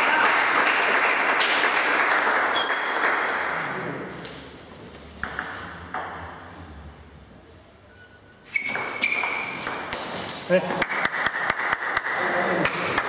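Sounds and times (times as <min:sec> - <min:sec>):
spectators applauding: 0:00.0 - 0:03.3
table tennis ball pinging: 0:05.2 - 0:06.5, 0:08.6 - 0:12.0.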